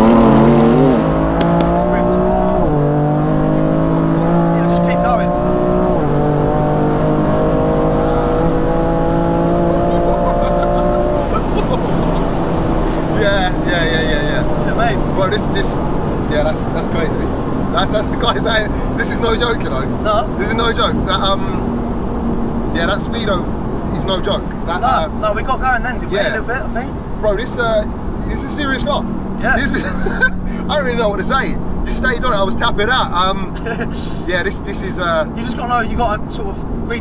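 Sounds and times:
car engine revving through gears: 0:00.0 - 0:37.0.

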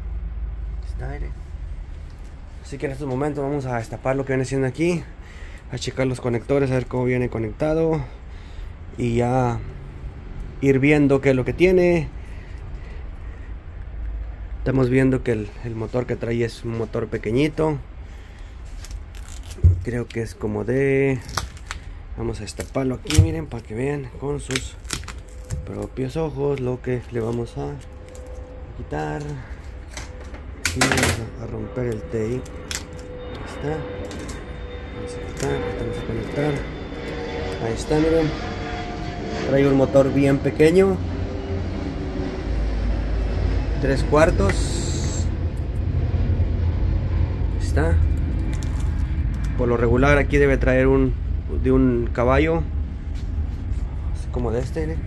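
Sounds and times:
low steady rumble: 0:00.0 - 0:55.0
hands handling taped wiring: 0:18.6 - 0:23.7, 0:24.4 - 0:28.5, 0:29.2 - 0:33.1, 0:48.1 - 0:49.6.

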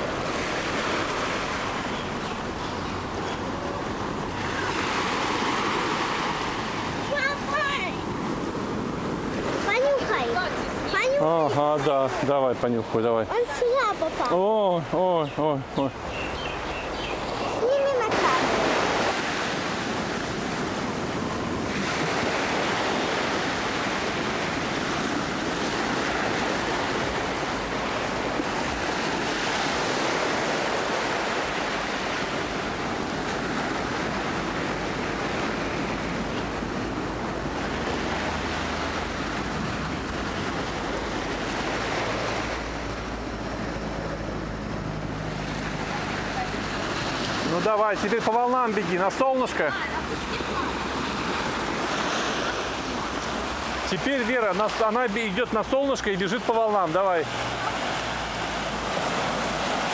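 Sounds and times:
small waves washing onto sand: 0:00.0 - 0:59.9.

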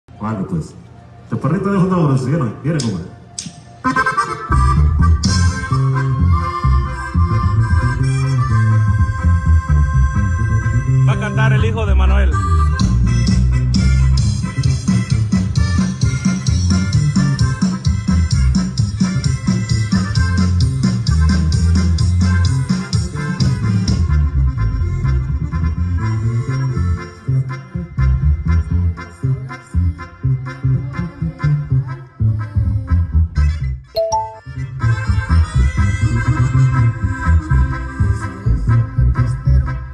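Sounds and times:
band music with keyboard: 0:00.1 - 0:39.9
reedy lead melody: 0:03.1 - 0:11.4, 0:34.0 - 0:34.8
bass line: 0:03.8 - 0:26.4.

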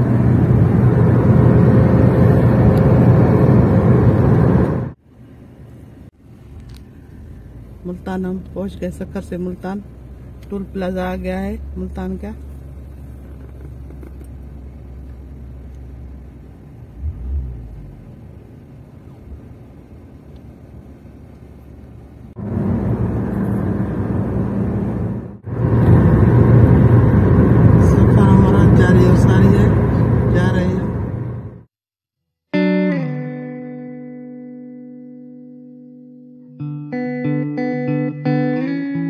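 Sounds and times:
car cabin low rumble: 0:00.0 - 0:31.6
road and wind noise: 0:00.0 - 0:31.7.

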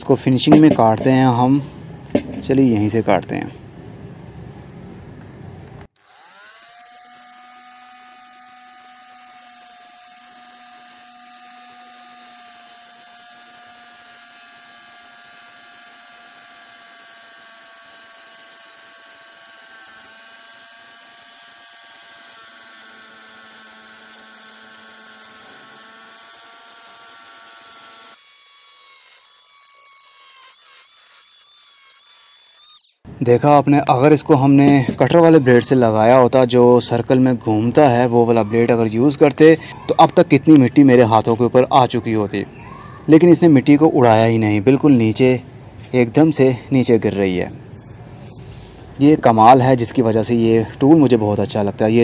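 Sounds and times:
multi-tool cutting brick: 0:06.0 - 0:33.0.

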